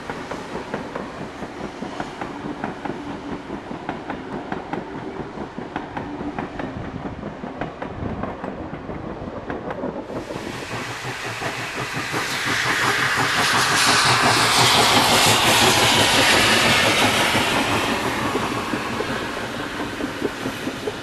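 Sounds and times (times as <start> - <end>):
train wheels clicking over rail joints: 0.0 - 21.0
steam locomotive hissing: 10.0 - 21.0.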